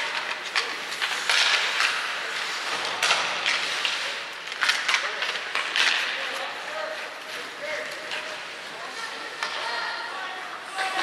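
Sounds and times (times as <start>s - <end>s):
skates scraping on ice: 0.0s - 9.9s
sticks and puck clacking: 0.0s - 10.1s.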